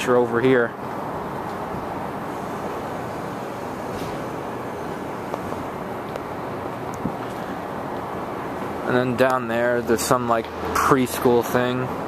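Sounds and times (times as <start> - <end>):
rushing hum: 0.0 - 12.0.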